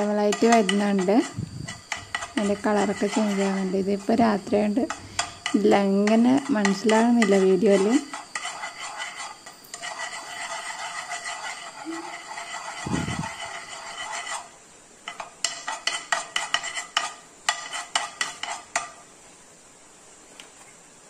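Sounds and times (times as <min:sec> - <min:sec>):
metal spoon scraping a pan: 0:00.0 - 0:19.0.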